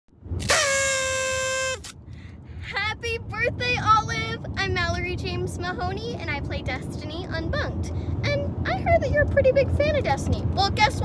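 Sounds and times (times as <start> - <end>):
toy party horn buzzing: 0.4 - 2.0.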